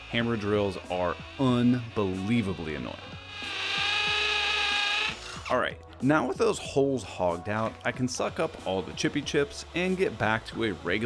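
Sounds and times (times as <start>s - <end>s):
drill boring through wood: 0.0s - 5.6s, 7.5s - 11.0s.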